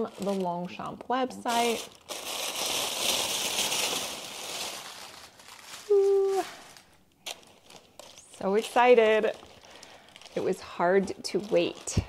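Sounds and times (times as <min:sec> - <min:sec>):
tissue paper crinkling: 0:00.0 - 0:12.0
person humming a note: 0:05.9 - 0:06.6.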